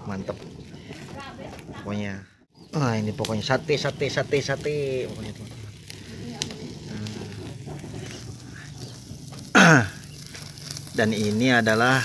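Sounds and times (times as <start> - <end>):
meat sizzling on grill: 0.0 - 12.0.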